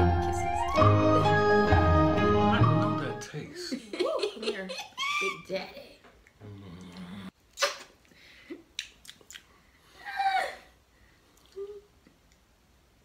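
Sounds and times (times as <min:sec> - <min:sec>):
lip smacking: 0:06.2 - 0:09.6, 0:11.4 - 0:12.4.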